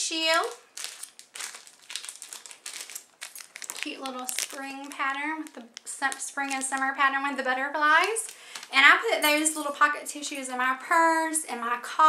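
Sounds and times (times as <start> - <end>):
plastic wrapper crinkling: 0.0 - 9.8.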